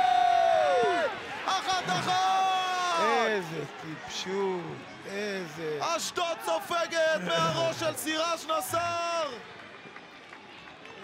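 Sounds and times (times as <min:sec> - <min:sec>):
man shouting goal: 0:01.4 - 0:03.5.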